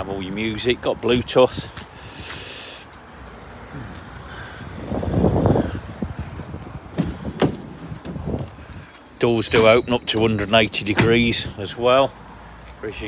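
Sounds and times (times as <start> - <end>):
van door clattering clunk: 6.9 - 8.4, 9.4 - 11.5.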